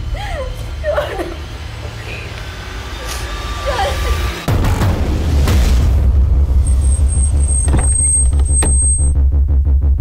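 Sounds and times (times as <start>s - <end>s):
heavy bass drone: 0.0s - 10.0s.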